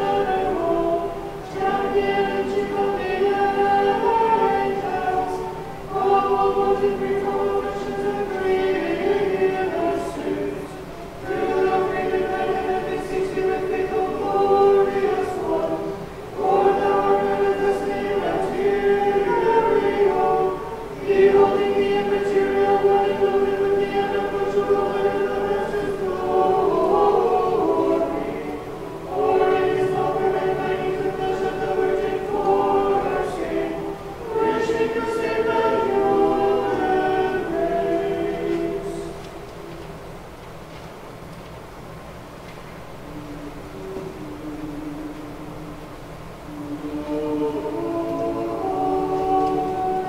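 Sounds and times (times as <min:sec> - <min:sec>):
choir singing unaccompanied chant: 0:00.0 - 0:40.4, 0:42.9 - 0:50.0.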